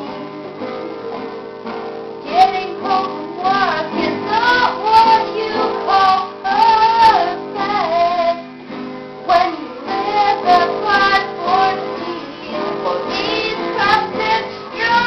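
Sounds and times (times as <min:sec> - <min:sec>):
strummed acoustic guitars: 0:00.0 - 0:15.0
young girl singing: 0:02.2 - 0:08.5, 0:09.2 - 0:15.0.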